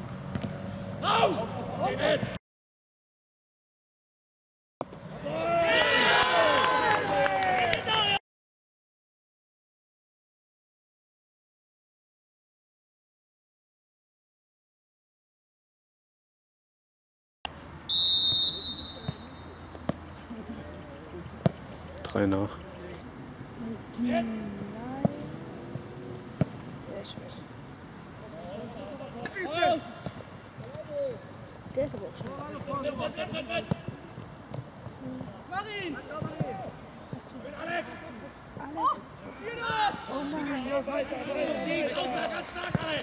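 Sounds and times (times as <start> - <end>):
distant shouts and calls: 1.0 - 2.4, 37.5 - 43.0
referee's whistle long blast: 17.9 - 19.4.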